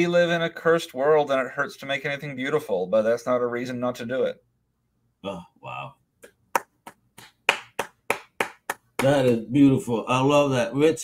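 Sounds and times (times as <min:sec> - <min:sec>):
person clapping hands: 0:06.2 - 0:09.4.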